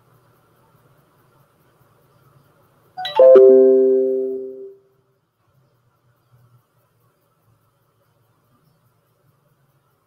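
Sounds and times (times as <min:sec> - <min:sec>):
chime of descending ringing notes: 0:03.0 - 0:04.7.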